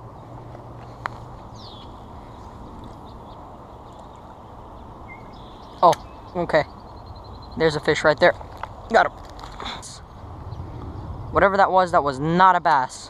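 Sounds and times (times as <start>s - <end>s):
outdoor background noise: 0.0s - 13.0s
high falling bird chirp: 1.3s - 8.1s
sharp click: 5.8s - 6.1s.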